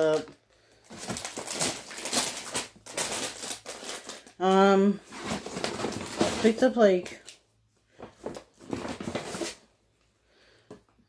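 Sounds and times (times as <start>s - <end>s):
grocery packaging rustling: 0.0s - 9.7s.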